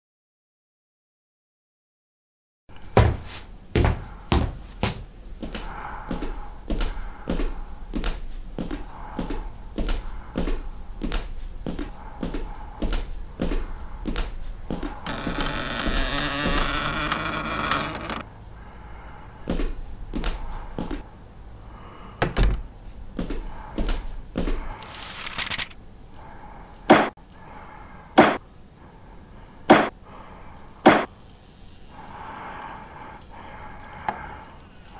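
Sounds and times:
footsteps in a small room: 0:02.7 - 0:17.2, 0:19.4 - 0:21.2, 0:22.2 - 0:25.8
heavy door creaking open: 0:15.0 - 0:18.3, 0:22.2 - 0:22.8
loud thunk: 0:22.2 - 0:22.7.

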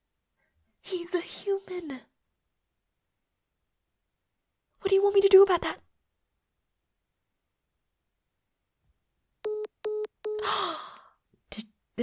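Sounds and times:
phone call-ended beeps: 0:09.4 - 0:10.4
breathy sigh: 0:10.4 - 0:11.2.

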